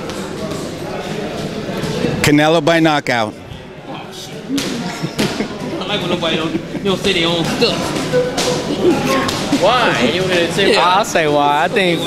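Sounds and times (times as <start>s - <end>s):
gym background din: 0.0s - 12.0s.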